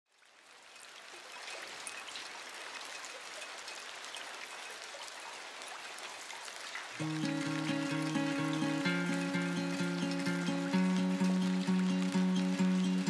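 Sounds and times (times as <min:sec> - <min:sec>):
running water hiss: 0:00.3 - 0:13.0.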